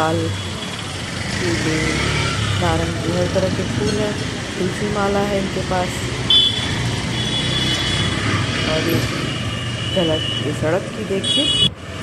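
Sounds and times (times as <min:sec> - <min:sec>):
vehicle engines rumbling: 0:00.0 - 0:12.0.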